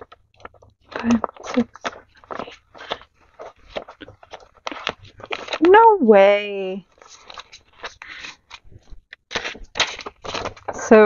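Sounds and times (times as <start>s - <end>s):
paper bills flicking and rustling: 0.0s - 5.7s, 6.8s - 11.0s.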